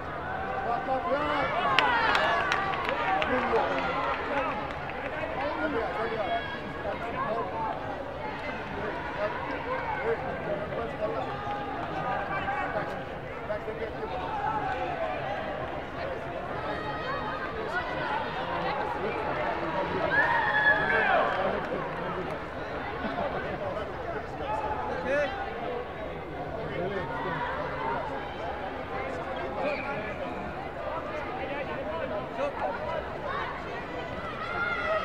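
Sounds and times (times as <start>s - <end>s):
many voices calling out in a hall: 0.0s - 35.0s.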